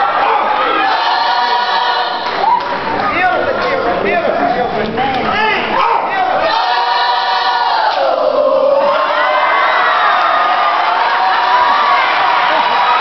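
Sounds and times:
choir holding a sung note: 0.6s - 2.4s, 6.4s - 12.6s
whoops and shouts: 2.4s - 2.8s.

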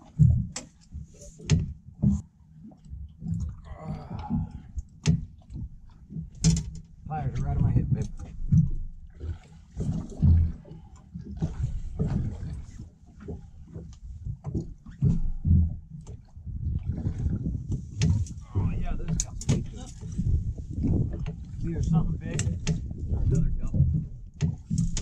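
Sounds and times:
low rumble: 6.9s - 9.1s, 9.9s - 25.0s.

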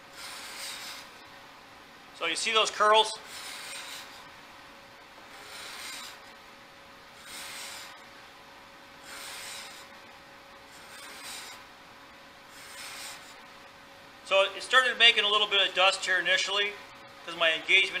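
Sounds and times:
card scraper shaving wood: 0.1s - 1.1s, 3.2s - 4.2s, 5.3s - 6.2s, 7.2s - 8.0s, 9.0s - 9.9s, 10.7s - 11.6s, 12.6s - 13.4s.

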